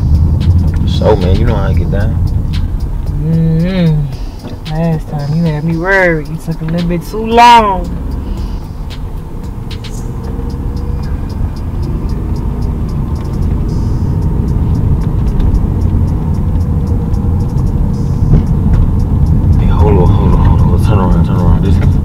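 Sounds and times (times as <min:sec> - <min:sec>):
background music: 0:00.0 - 0:19.6
car road and engine rumble: 0:00.0 - 0:22.0
person speaking: 0:00.8 - 0:02.3, 0:03.0 - 0:08.1.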